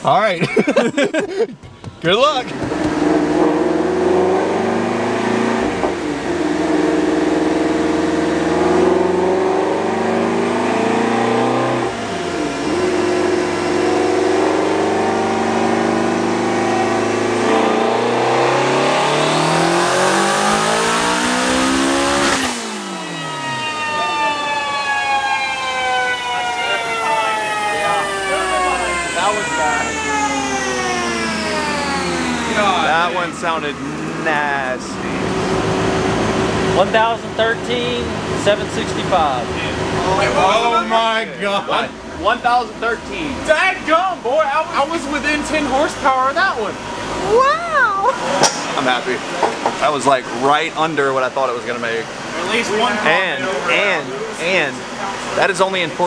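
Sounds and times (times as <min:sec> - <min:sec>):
dyno rollers winding down: 0:02.5 - 0:41.3
car engine revving on dyno: 0:02.5 - 0:47.4, 0:48.1 - 0:56.0.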